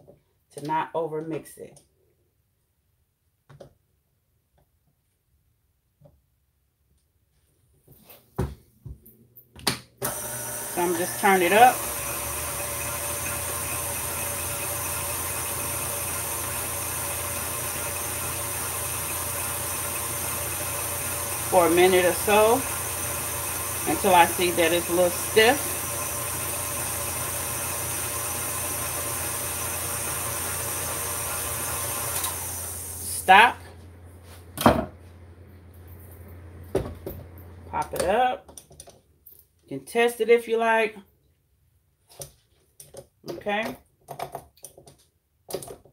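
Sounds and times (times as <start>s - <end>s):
electric stand mixer running: 10.0s - 35.5s
low steady hum: 32.9s - 38.2s
stand mixer head clunk: 34.6s - 35.0s.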